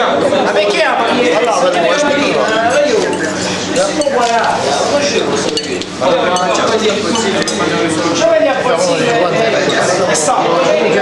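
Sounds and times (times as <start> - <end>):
voices talking: 0.0 - 11.0
cutlery clinking against plates: 2.0 - 7.9.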